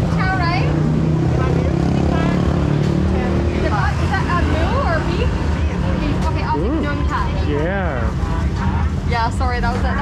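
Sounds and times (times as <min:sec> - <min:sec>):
vehicle engine running: 0:00.0 - 0:10.0
voices: 0:00.0 - 0:10.0.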